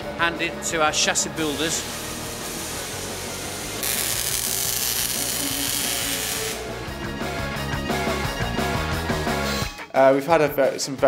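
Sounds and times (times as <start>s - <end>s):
background music: 0.0s - 11.0s
harsh hiss of metalworking: 1.2s - 6.7s.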